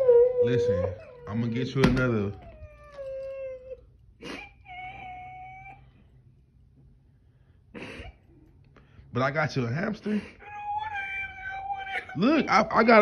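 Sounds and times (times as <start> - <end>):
girl crying with whimpering wails: 0.0 - 1.7, 2.4 - 6.2, 10.0 - 12.4.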